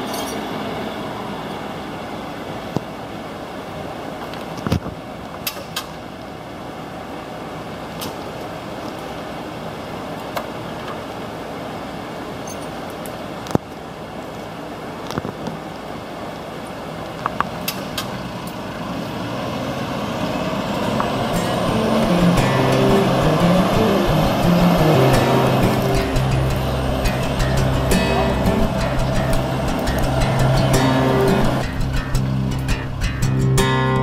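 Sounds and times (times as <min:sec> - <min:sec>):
truck diesel engine pulling away: 0:18.2 - 0:34.0
music with stepping notes: 0:21.0 - 0:34.0.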